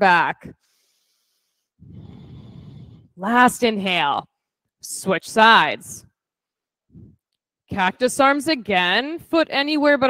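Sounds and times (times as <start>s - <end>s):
person breathing in deeply: 0.6s - 3.2s.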